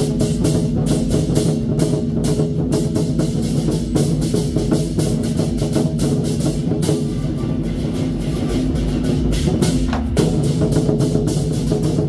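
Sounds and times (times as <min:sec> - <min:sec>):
war drums beaten fast: 0:00.0 - 0:12.0.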